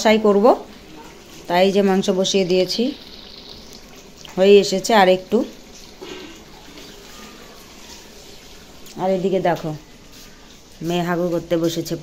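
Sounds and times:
curry sizzling in a pan: 0.0s - 12.0s.

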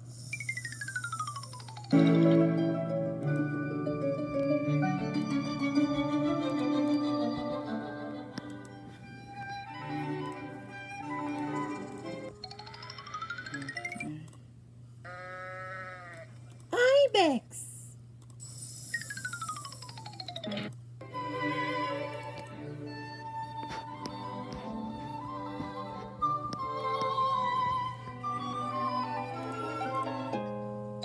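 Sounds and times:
whistle-like sound effects gliding: 0.1s - 2.0s, 18.9s - 20.4s, 24.8s - 30.4s
gentle music with bell-like notes: 1.9s - 14.1s, 21.1s - 31.0s.

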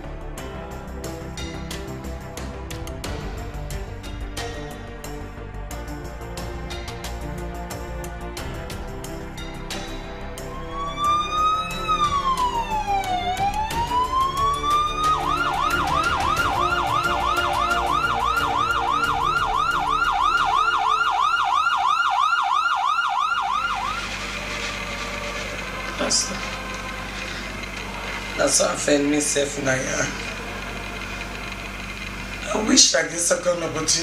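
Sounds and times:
music: 0.0s - 34.0s
emergency vehicle siren: 10.4s - 33.8s.

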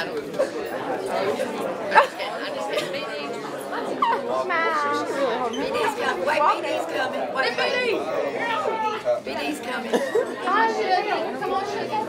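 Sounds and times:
people talking over one another: 0.0s - 12.0s.

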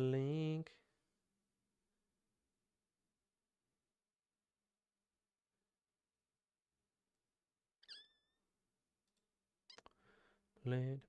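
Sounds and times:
short high squeak: 7.8s - 8.4s.

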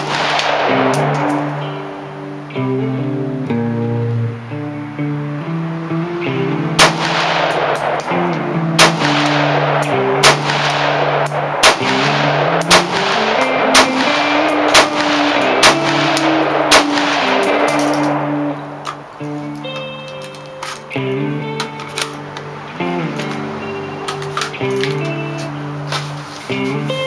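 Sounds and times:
rifle shots: 0.0s - 1.8s, 6.8s - 19.1s
acoustic guitar music: 0.0s - 27.0s.

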